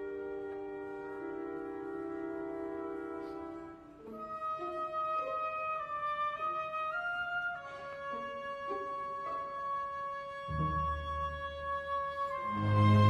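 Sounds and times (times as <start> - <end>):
deep low orchestral notes: 0.0 - 13.0
orchestral ballet music: 0.0 - 13.0.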